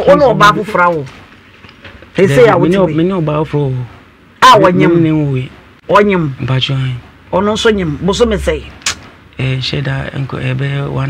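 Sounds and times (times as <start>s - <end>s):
talk-show speech: 0.0s - 1.1s, 2.2s - 5.5s
low rumble: 7.3s - 9.8s
sharp click: 8.8s - 9.1s.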